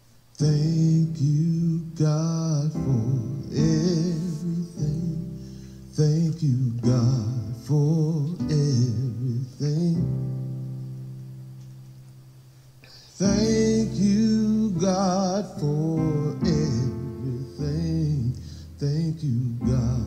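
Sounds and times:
person singing gospel with vibrato: 0:00.0 - 0:11.0, 0:12.8 - 0:20.0.

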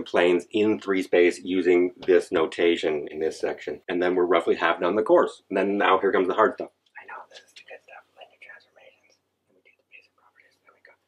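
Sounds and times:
faint whispered speech: 0:07.0 - 0:11.0.

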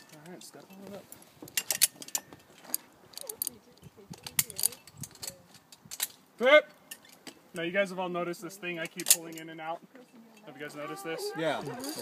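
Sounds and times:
metal carabiners clinking: 0:00.0 - 0:07.6, 0:08.7 - 0:10.9, 0:11.6 - 0:12.0.

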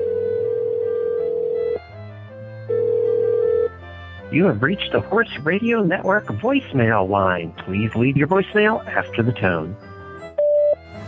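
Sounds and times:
telephone ringback tone: 0:00.0 - 0:01.9, 0:02.6 - 0:03.9, 0:10.3 - 0:10.9.

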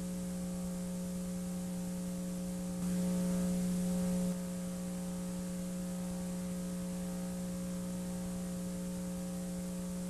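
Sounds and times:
buzzy mains hum: 0:00.0 - 0:10.0.

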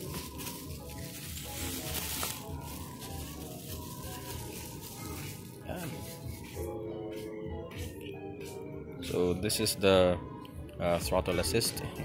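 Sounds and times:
bubble wrap crinkling: 0:00.0 - 0:06.7
background music: 0:00.0 - 0:12.0.

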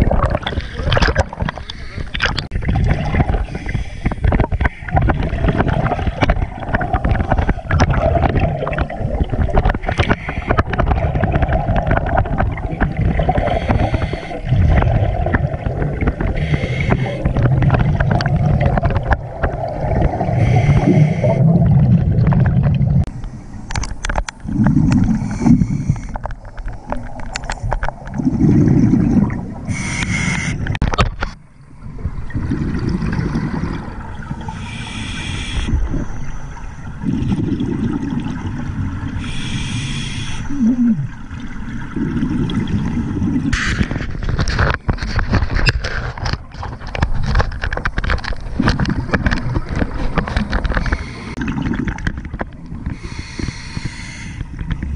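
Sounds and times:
exhaust bubbles rumbling: 0:00.0 - 0:01.6, 0:02.2 - 0:23.1, 0:24.4 - 0:29.8, 0:31.8 - 0:34.5.

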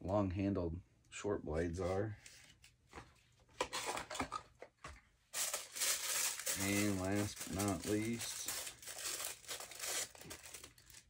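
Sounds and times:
wrapper crinkling: 0:05.3 - 0:11.0
plastic bag tearing: 0:05.4 - 0:11.0.

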